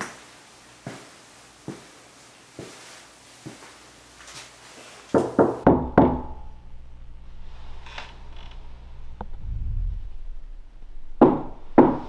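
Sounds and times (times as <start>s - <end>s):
sharp knocks on a door: 5.2s - 6.3s.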